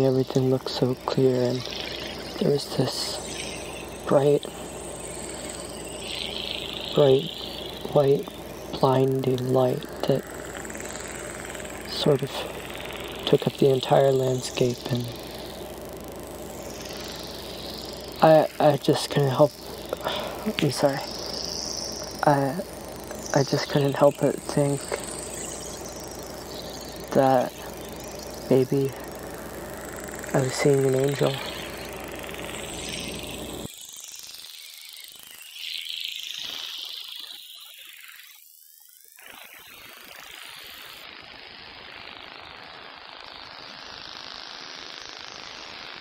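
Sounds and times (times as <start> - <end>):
insects chirring: 0.0 - 46.0.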